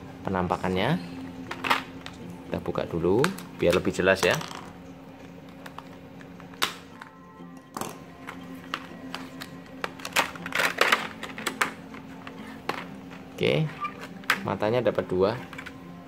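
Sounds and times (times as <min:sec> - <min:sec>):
background music: 0:00.0 - 0:16.0
plastic packaging clicks and crackles: 0:08.9 - 0:13.0.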